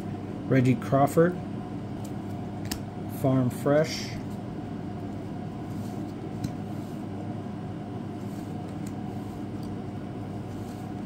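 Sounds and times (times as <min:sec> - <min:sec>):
steady low hum: 0:00.0 - 0:11.0
trading cards sliding: 0:05.6 - 0:07.1, 0:08.1 - 0:11.0.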